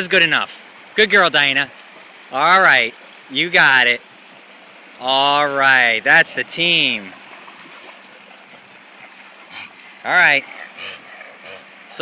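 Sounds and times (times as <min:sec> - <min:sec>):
small waves lapping on sand: 0:00.0 - 0:12.0
dogs splashing in water: 0:05.3 - 0:12.0.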